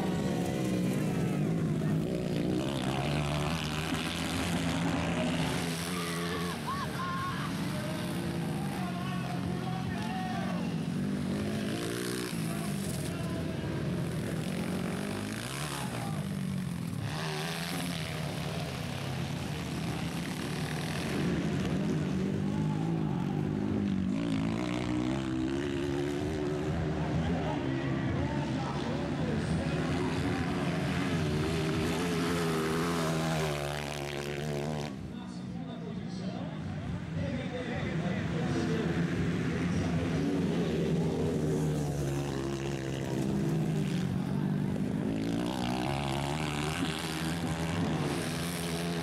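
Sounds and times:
dirt bike engines racing: 0.0 - 49.0.

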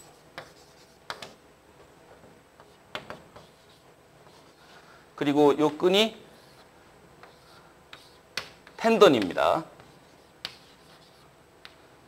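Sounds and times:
chalk tapping and scratching: 0.0 - 1.4, 2.6 - 4.8, 6.4 - 11.8.

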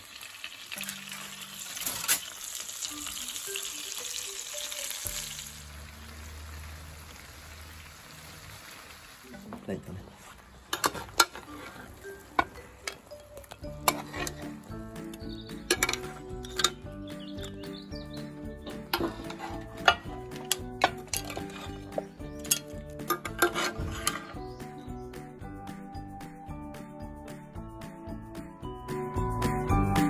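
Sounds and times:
background music: 0.7 - 8.3, 10.7 - 30.0
metal spoon scraping pan and plate: 10.7 - 14.6, 15.2 - 17.6, 18.8 - 24.5.

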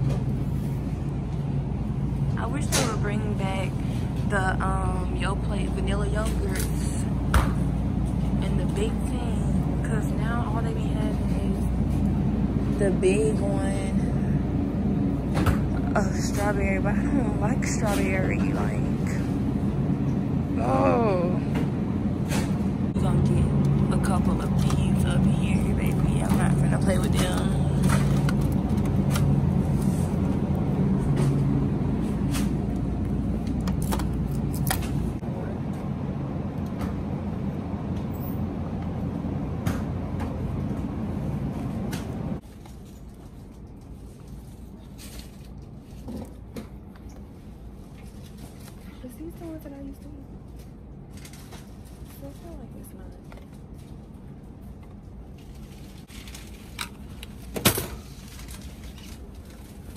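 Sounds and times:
refrigerated display case humming: 0.0 - 59.9
store background: 0.0 - 59.9.

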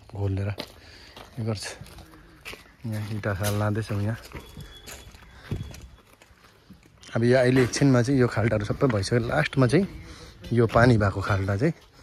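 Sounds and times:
soft footsteps on dry soil: 0.0 - 12.0.

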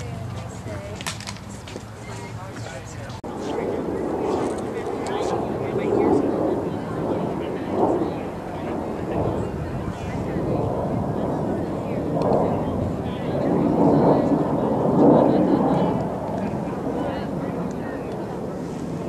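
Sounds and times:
indistinct voices talking: 0.0 - 19.0
steady low rumble: 0.0 - 19.0.

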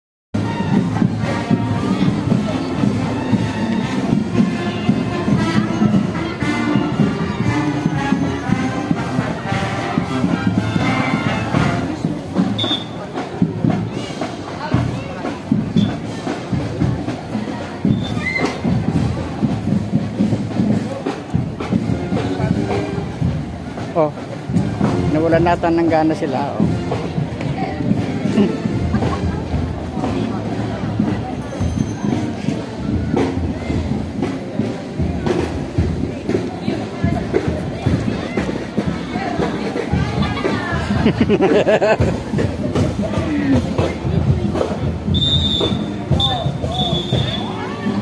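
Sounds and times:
drumbeats: 0.4 - 48.0
marching band playing: 0.4 - 48.0
people talking: 0.4 - 48.0.

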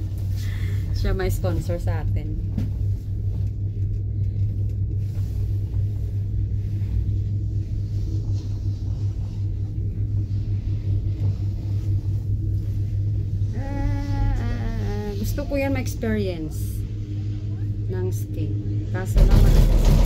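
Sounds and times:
gondola cabin rumble and hum: 0.0 - 20.0.

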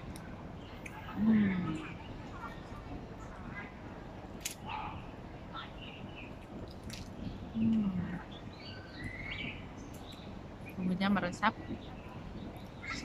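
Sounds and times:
faint bird chirps: 7.2 - 13.0.

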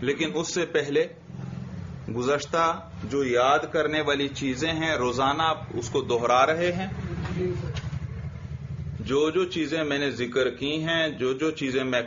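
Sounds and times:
low engine-like rumble: 1.2 - 11.0.

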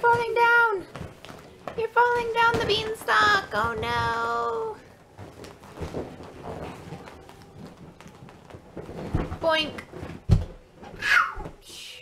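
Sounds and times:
thumps on inflated bouncy house: 0.0 - 11.6.

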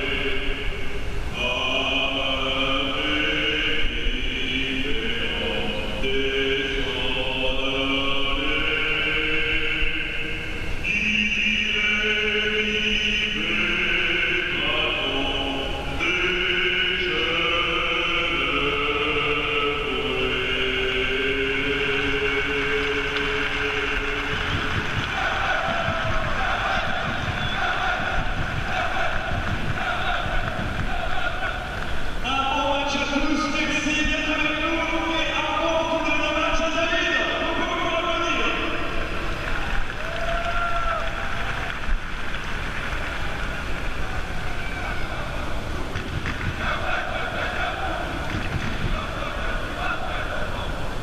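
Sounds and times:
crowd singing: 0.0 - 39.7, 44.6 - 51.0
murmur of voices: 0.0 - 51.0.

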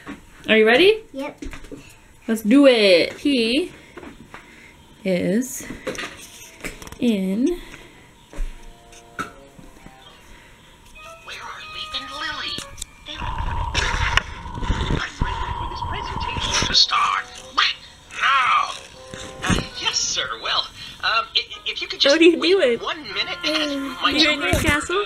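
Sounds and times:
electronic toy beeping and tune: 11.0 - 13.6
rustling and handling noise: 16.6 - 21.0.

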